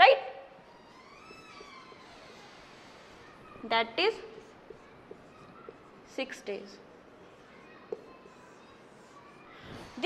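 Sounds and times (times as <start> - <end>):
marker writing on whiteboard: 0.9 - 10.0.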